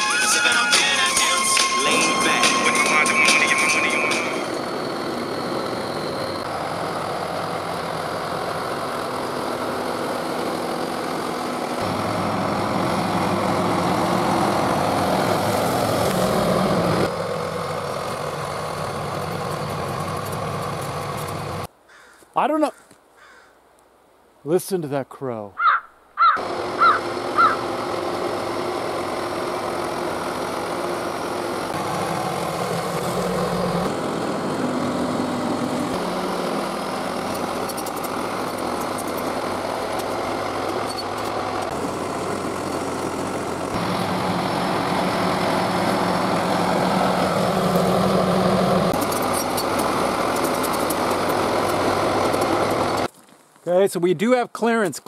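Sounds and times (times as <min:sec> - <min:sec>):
bulldozer engine under load: 0:00.0 - 0:21.7, 0:26.4 - 0:53.4.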